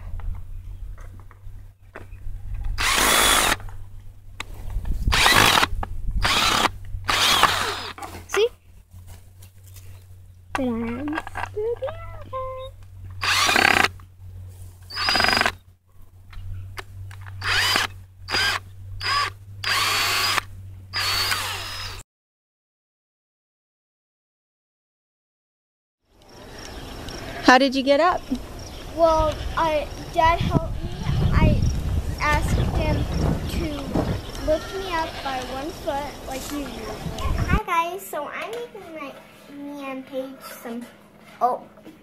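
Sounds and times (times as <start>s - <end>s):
cordless drill whirring: 2.8s - 3.6s, 5.1s - 8.0s, 13.2s - 13.9s, 14.9s - 15.6s, 17.4s - 22.0s.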